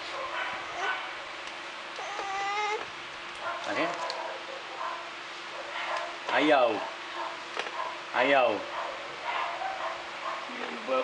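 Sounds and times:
baby fussing and babbling: 2.0s - 2.8s.

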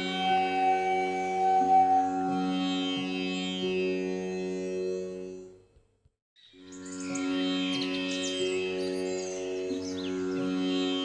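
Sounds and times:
instrumental music with sitar-like drone: 0.0s - 5.7s, 6.4s - 11.0s.

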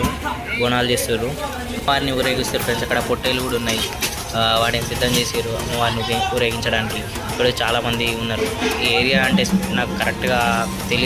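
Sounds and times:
men talking in a crowd: 0.0s - 11.0s.

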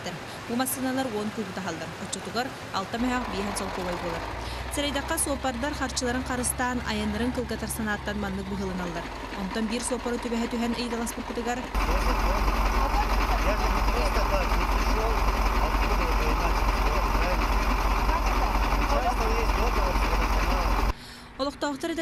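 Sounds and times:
truck engine idling: 0.0s - 21.0s
faint voices in conversation: 11.1s - 20.9s.

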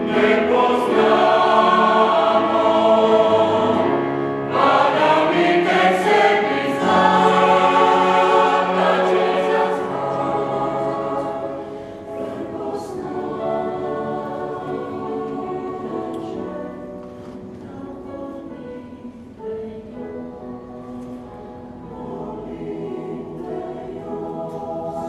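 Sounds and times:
mixed choir singing in harmony: 0.0s - 25.0s.

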